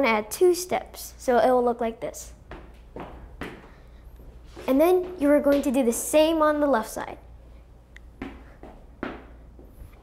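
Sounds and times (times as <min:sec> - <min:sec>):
footsteps on wooden floor: 0:02.4 - 0:05.9, 0:08.2 - 0:10.0.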